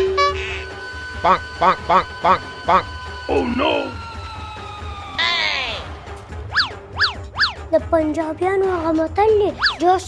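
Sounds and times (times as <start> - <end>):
steady pitched tone: 0.0 - 7.7.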